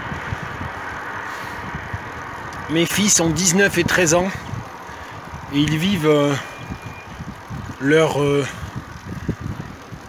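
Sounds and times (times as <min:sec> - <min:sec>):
street noise: 0:00.0 - 0:10.0
wind on microphone: 0:00.0 - 0:10.0.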